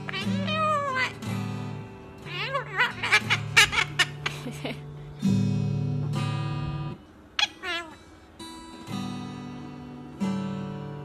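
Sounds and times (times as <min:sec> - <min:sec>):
parrot wavering call: 0:00.0 - 0:01.3, 0:02.2 - 0:04.3, 0:07.4 - 0:08.0.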